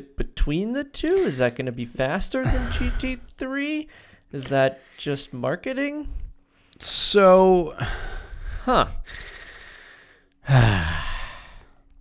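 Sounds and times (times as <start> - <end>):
man's voiced sigh: 10.4 - 11.7.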